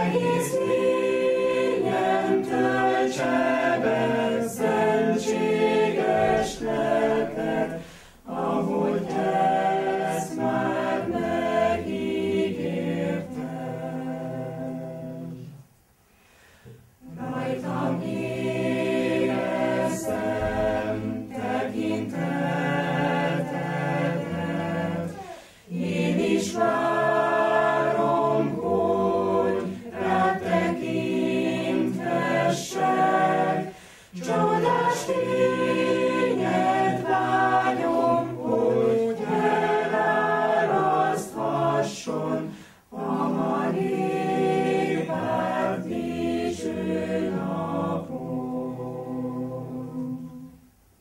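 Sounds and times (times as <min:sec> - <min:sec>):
choir singing a hymn: 0:00.0 - 0:15.6, 0:16.6 - 0:50.7.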